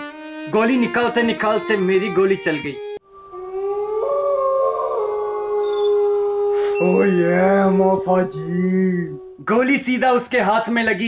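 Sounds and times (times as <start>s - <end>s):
long held howl-like note: 3.3s - 9.5s.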